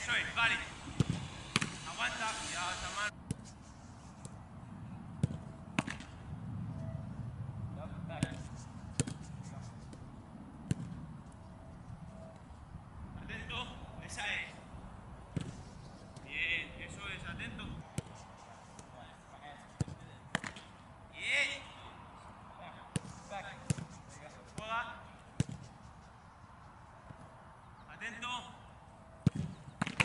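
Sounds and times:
football thuds: 0.7 - 1.8, 5.2 - 6.1, 22.9 - 23.9, 25.4 - 25.6.

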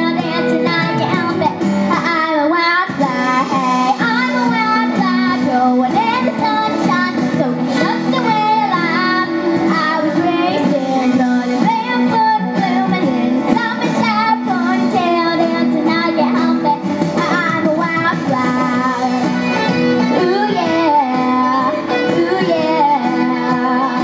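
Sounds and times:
girl singing into microphone: 0.0 - 24.0
instrumental backing music: 0.0 - 24.0.

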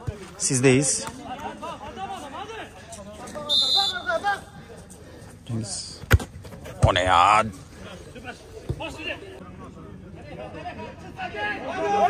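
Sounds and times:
players shouting: 1.1 - 4.6
ball being kicked: 6.0 - 6.9.

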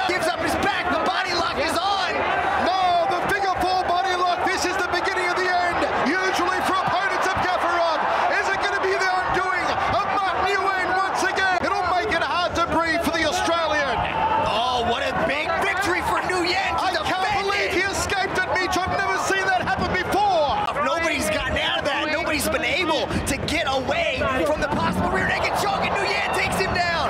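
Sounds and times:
crowd yelling and cheering: 0.0 - 27.0.

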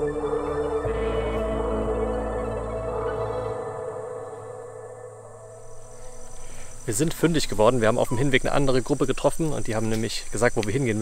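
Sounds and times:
ambient music with ringing tones: 0.0 - 8.4
high-pitched insect drone: 0.0 - 11.0.

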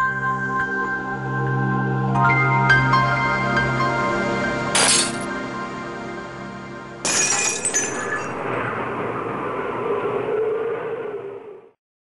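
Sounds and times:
glass shattering: 4.8 - 5.3, 7.0 - 8.4.

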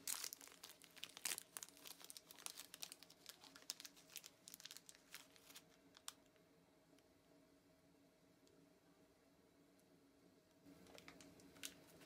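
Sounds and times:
plastic packaging crinkling: 0.0 - 6.4, 10.7 - 12.0.

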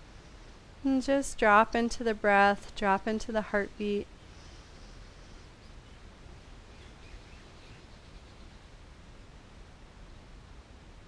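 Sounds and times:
steady low hum: 0.0 - 11.0
faint even hiss: 3.8 - 11.0.

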